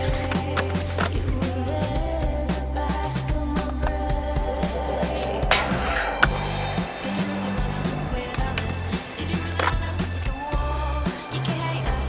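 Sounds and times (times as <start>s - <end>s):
skateboard clacking: 0.0s - 1.6s, 5.5s - 12.0s
music with bass line: 0.0s - 12.0s
skateboard rolling on concrete: 0.0s - 12.0s.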